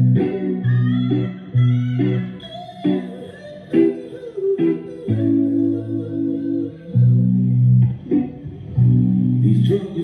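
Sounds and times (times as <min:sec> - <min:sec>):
electric guitar chord: 0:00.0 - 0:10.0.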